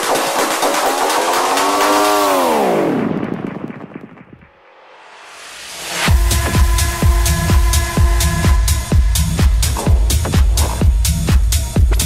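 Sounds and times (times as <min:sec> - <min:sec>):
techno dj mix: 0:00.0 - 0:04.6, 0:06.0 - 0:12.0
rising and falling sweep effect: 0:00.0 - 0:06.2.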